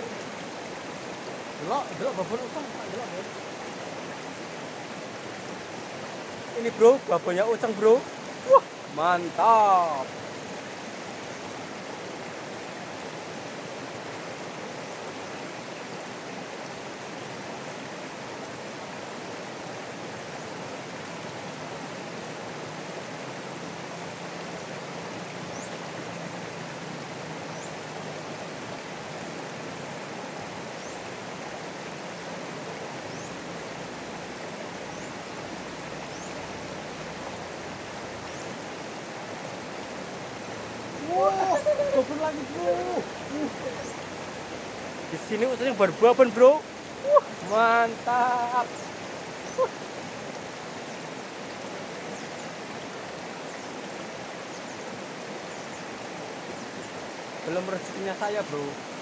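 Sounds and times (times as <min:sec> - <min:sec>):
river rushing over stones: 0:00.0 - 0:59.0.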